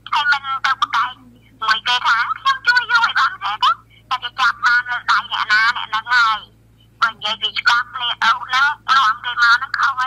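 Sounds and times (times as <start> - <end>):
low steady hum: 0.0 - 10.0
tinny voice over phone: 0.1 - 10.0.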